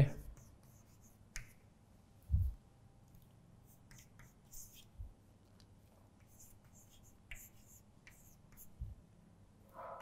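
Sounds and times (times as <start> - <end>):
chalk tapping on blackboard: 0.1 - 1.6, 3.7 - 5.0, 6.2 - 9.0.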